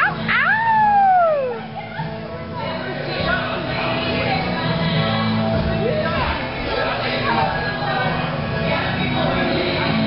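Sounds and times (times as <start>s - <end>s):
person howling whoop: 0.3s - 1.6s.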